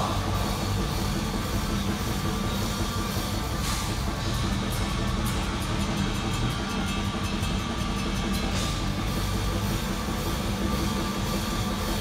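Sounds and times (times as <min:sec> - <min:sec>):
fast drum beat: 0:00.0 - 0:12.0
heavy metal band playing live: 0:00.0 - 0:12.0.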